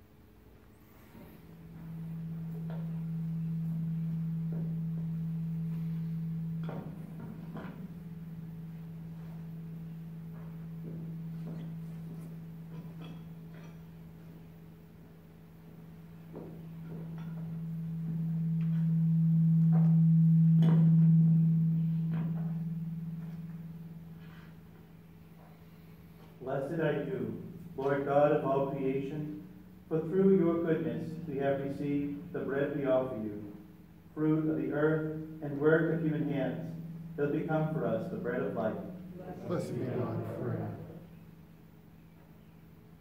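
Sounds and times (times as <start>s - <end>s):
low pure tone: 0.0s - 43.0s
steady low hum: 0.0s - 43.0s.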